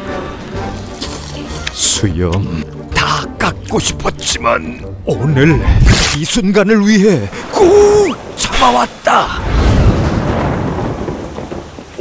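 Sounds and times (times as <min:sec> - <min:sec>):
rain hiss: 0:00.0 - 0:05.0, 0:05.6 - 0:12.0
rolling thunder: 0:07.3 - 0:12.0.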